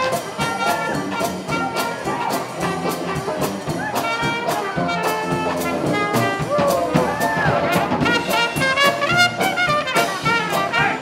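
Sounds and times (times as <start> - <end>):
steady drum beat: 0.0 - 11.0
trombone playing: 0.0 - 11.0
trumpet playing: 0.0 - 11.0.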